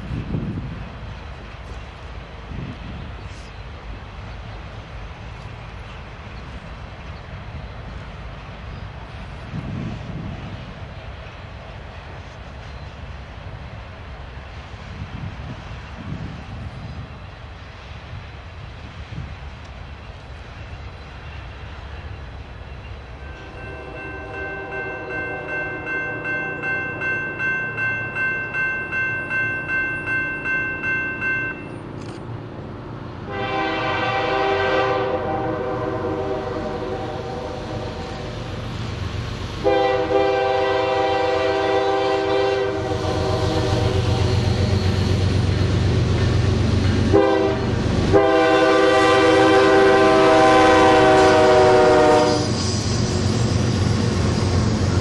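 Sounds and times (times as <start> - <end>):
train rolling by: 0.0 - 55.0
locomotive horn: 23.2 - 26.6, 33.3 - 38.5, 39.6 - 44.8, 47.1 - 52.7
crossing bell ringing: 23.2 - 31.9
locomotive engine rumble: 31.5 - 55.0.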